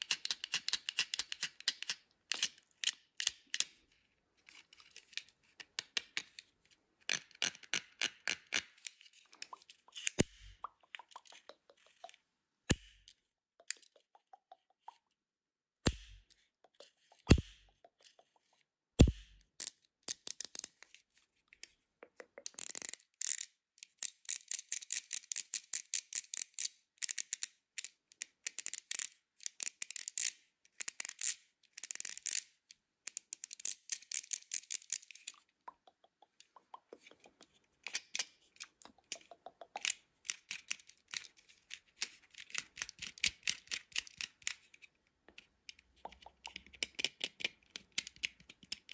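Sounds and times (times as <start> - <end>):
plastic fidget pad clicking: 0.0 - 3.8, 15.9 - 21.0, 22.0 - 48.9.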